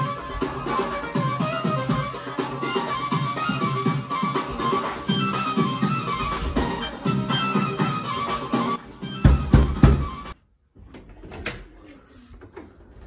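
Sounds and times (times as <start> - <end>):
dance song with beat: 0.0 - 10.4.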